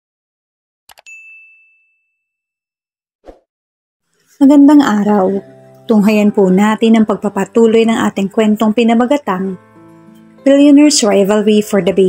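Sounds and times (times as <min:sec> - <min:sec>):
bright bell ding: 0:01.0 - 0:02.2.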